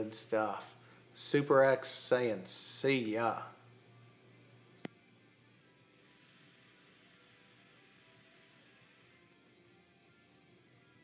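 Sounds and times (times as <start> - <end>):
faint high hiss of vaping: 5.8 - 9.6.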